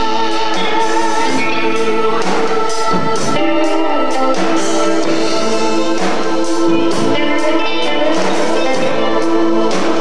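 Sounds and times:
bass guitar: 0.0 - 10.0
drums with cymbal hits: 0.0 - 10.0
electric guitars: 0.0 - 10.0
keyboards holding chords: 0.0 - 10.0
person singing: 0.0 - 10.0.

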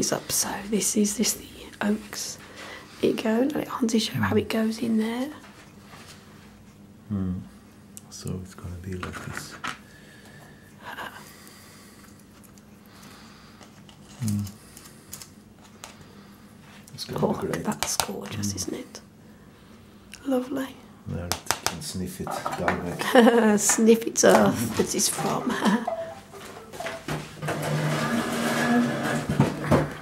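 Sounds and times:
fingers clicking on plastic pot: 17.5 - 18.3, 21.2 - 21.8
phone tones: 25.2 - 27.1.

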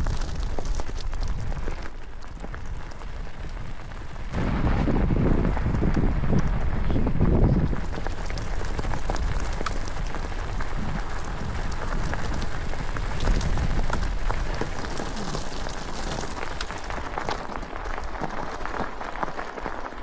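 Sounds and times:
wind on microphone: 0.0 - 18.1
bike tyres on stony track: 0.0 - 20.0.

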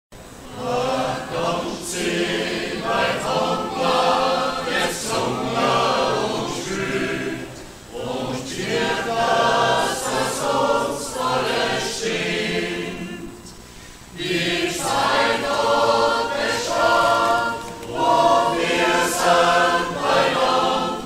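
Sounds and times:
mixed choir singing: 0.4 - 21.0.

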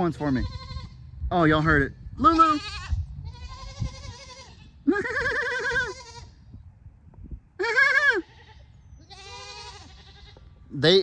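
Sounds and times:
goats bleating: 0.0 - 1.0, 2.2 - 6.4, 7.6 - 10.5.

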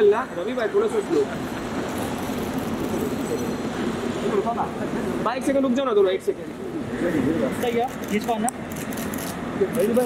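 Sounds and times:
murmur of distant voices: 0.0 - 10.0
road traffic: 0.0 - 10.0.

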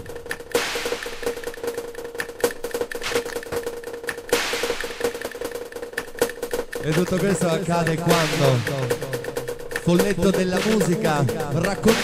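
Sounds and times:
fast clicking percussion: 0.0 - 12.0.

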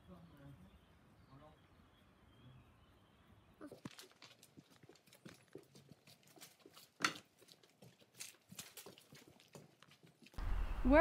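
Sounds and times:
footsteps on gritty stone path: 3.6 - 10.4.

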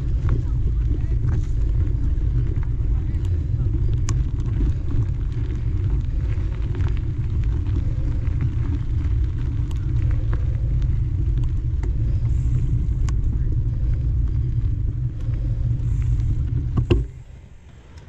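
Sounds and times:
wind noise: 0.0 - 17.7
light clicks and rattles: 0.0 - 18.0
mountain bike tyres rumbling on dirt: 0.0 - 18.0.

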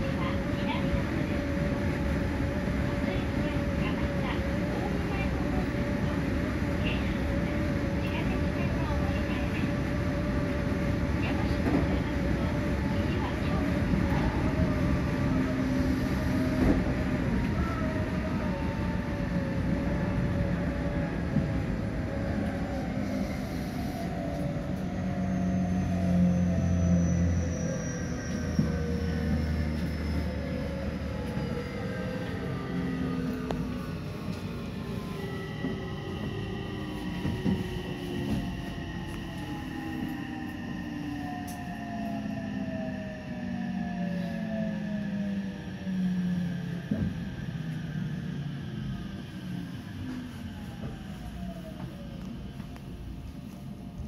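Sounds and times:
train wheels rumbling on rail: 0.0 - 43.0, 43.6 - 54.0.

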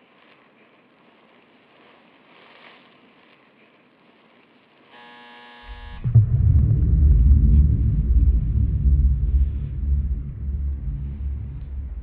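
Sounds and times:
steady buzzing tone: 4.9 - 12.0
deep low rumbling drone: 5.7 - 12.0.

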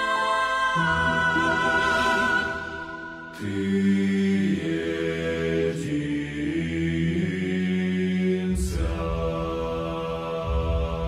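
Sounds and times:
male choir singing a hymn: 0.0 - 11.0
solo voice singing: 0.0 - 11.0.

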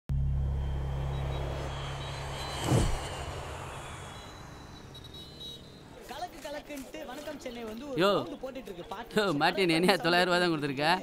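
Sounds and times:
low steady rumble: 0.1 - 5.9
loud whoosh: 0.1 - 6.0.

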